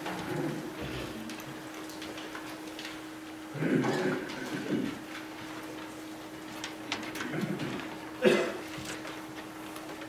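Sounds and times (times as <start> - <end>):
faint rustles and clicks: 0.0 - 10.0.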